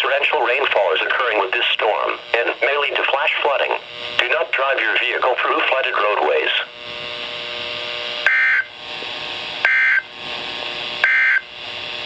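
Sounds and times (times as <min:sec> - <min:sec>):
radio hiss: 0:00.0 - 0:12.0
digital data tone bursts: 0:08.3 - 0:08.7, 0:09.6 - 0:10.1, 0:11.0 - 0:11.4.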